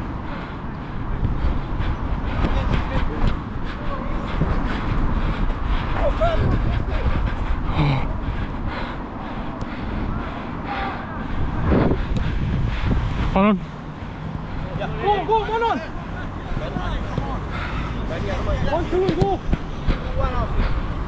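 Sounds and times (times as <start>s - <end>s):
wind rumble on microphone: 0.0s - 21.0s
distant players shouting: 5.8s - 11.6s, 14.3s - 21.0s.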